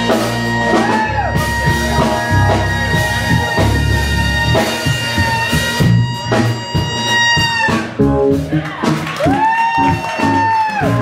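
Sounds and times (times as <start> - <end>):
saxophone long high note: 0.0 - 8.0
drums: 0.0 - 11.0
electric bass: 0.0 - 11.0.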